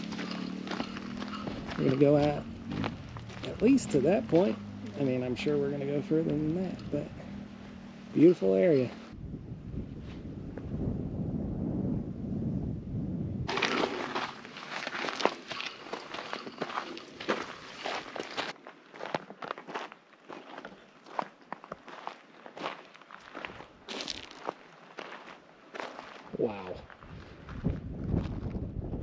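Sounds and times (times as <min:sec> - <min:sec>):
low rumble: 0:00.0 - 0:08.2, 0:08.9 - 0:14.4
footsteps on dirt trail: 0:00.0 - 0:09.2, 0:13.5 - 0:28.7.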